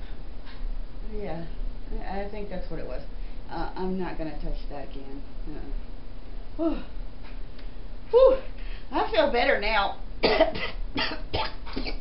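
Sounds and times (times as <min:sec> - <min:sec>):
woman coughing: 0:10.2 - 0:12.0.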